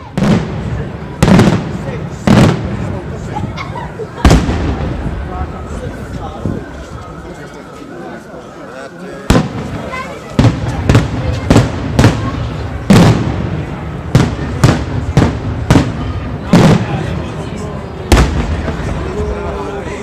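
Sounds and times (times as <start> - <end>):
echo of bangs: 0.0 - 2.9, 9.3 - 17.2, 18.0 - 19.1.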